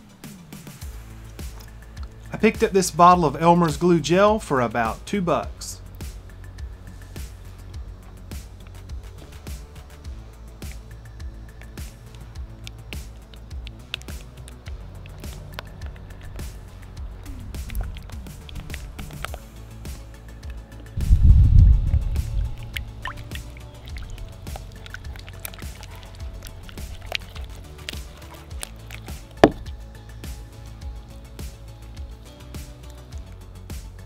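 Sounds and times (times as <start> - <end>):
background music: 0.0 - 34.0
spatula squishing and clicking in slime: 11.6 - 16.6, 17.6 - 20.6, 22.6 - 29.8
low rumble: 20.9 - 27.7.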